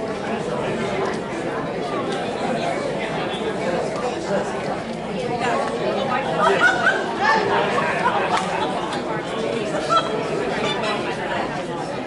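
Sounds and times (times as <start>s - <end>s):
hubbub of overlapping conversations: 0.0s - 12.0s.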